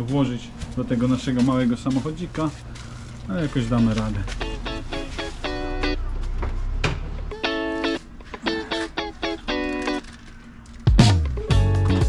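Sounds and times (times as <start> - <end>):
person speaking: 0.0 - 6.2
plucked string music: 4.3 - 6.2, 7.3 - 10.1, 10.9 - 12.0.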